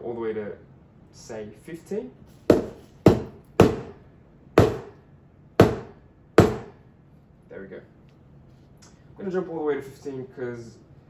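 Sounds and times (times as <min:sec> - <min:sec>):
portafilter knocking on knock box: 0:02.5 - 0:04.0, 0:04.6 - 0:05.0, 0:05.6 - 0:06.8.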